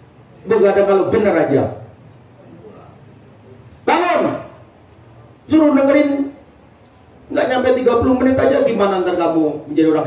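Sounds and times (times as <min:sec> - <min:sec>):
man talking over loudspeaker: 0:00.4 - 0:01.9, 0:03.8 - 0:04.6, 0:05.5 - 0:06.4, 0:07.3 - 0:10.0.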